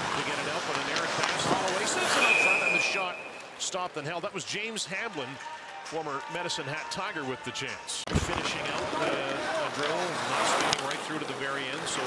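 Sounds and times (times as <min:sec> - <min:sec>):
crowd noise: 0:00.0 - 0:04.3, 0:07.5 - 0:12.0
sharp clicks from play on ice: 0:00.1 - 0:03.5, 0:08.3 - 0:11.4.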